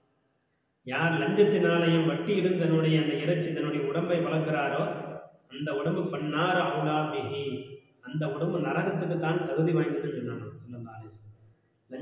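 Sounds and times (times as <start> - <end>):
man speaking in chant-like cadence: 0.9 - 11.1.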